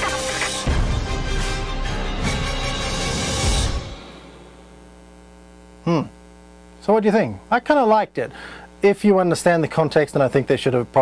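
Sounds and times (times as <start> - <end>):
electrical mains hum: 4.0 - 11.0
man speaking: 6.8 - 11.0.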